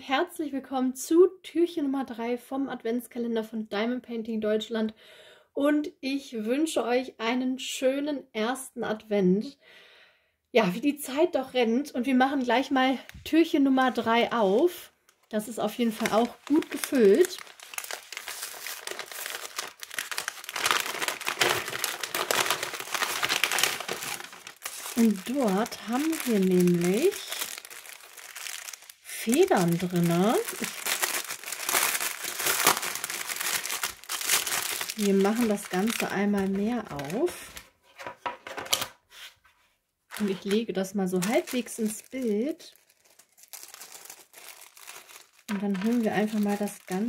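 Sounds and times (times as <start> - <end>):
cellophane crinkling: 12.4 - 38.1, 40.1 - 47.0
paper bag rustling: 15.8 - 38.1, 40.1 - 47.0.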